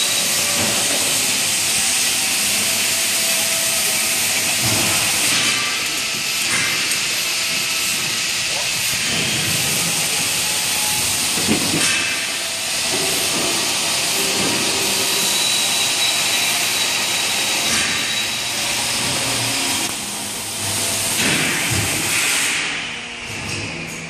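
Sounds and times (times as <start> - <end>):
rushing air hiss: 0.0 - 22.9.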